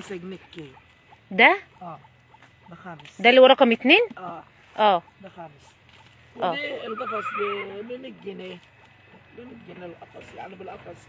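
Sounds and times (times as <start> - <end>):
quavering animal call: 0.0 - 11.0.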